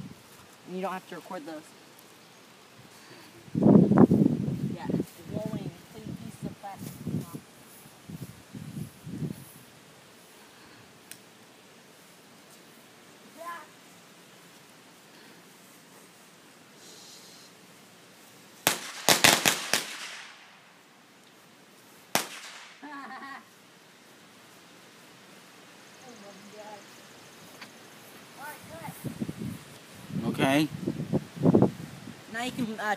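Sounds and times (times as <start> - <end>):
firecrackers banging: 18.6 - 20.6, 22.1 - 23.0.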